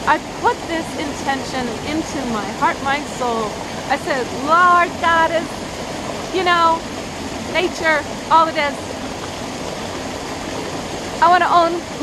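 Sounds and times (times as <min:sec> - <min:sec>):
stream flowing over rocks: 0:00.0 - 0:12.0.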